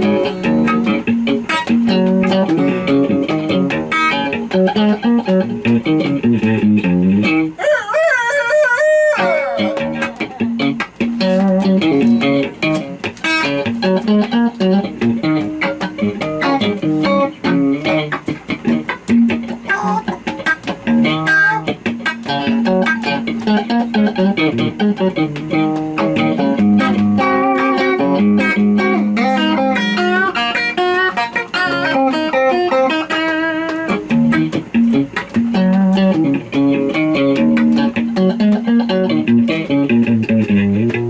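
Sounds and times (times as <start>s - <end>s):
guitar playing a riff: 0.0s - 7.6s, 9.1s - 41.0s
person singing: 19.7s - 20.2s, 21.2s - 21.7s.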